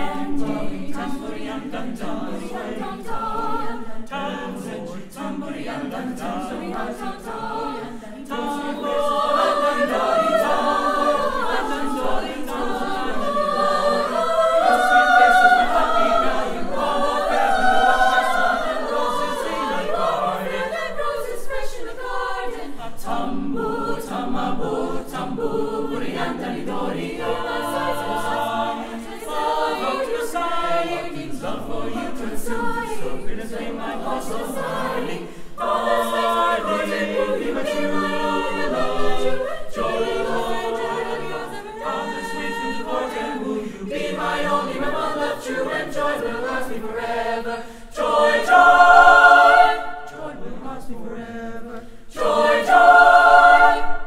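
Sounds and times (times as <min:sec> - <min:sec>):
mixed choir singing: 0:00.0 - 0:54.0
singers breathing: 0:35.2 - 0:35.6, 0:47.6 - 0:48.0, 0:51.8 - 0:52.1.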